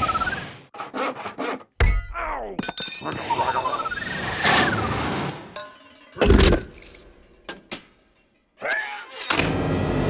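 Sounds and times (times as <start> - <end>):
rasping saw-like strokes: 0.7 - 1.7.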